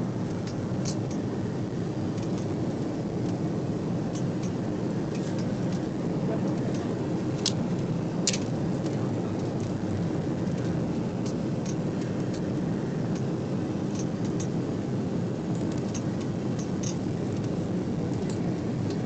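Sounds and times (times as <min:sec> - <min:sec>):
airliner cabin engine noise: 0:00.0 - 0:19.0.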